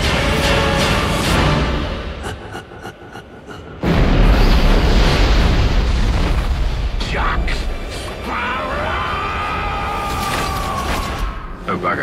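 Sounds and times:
trailer music: 0.0s - 12.0s.

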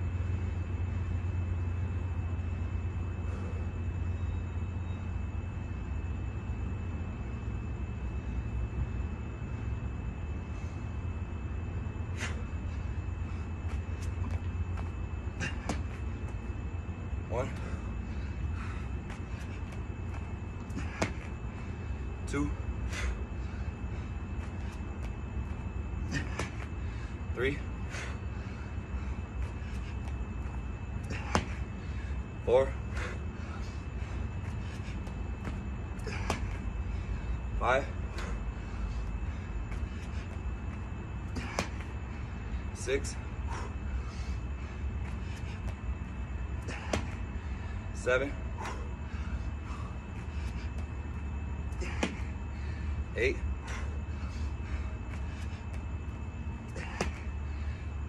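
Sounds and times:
steady low hum: 0.0s - 58.0s
steady low rumble: 0.0s - 58.0s
shoes slapping on a mat: 18.6s - 21.3s, 26.1s - 26.7s, 31.0s - 31.6s, 34.6s - 36.6s, 41.3s - 41.9s, 46.7s - 47.2s, 51.8s - 52.3s, 56.7s - 57.3s
sharp thump of landing: 31.1s - 31.6s, 51.8s - 52.3s, 56.8s - 57.3s.

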